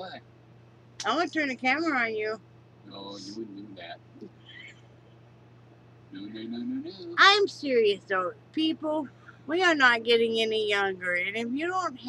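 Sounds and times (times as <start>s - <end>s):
steady low hum: 0.0s - 12.0s
faint low hoot-like vocal sound: 2.9s - 4.8s, 6.1s - 7.2s.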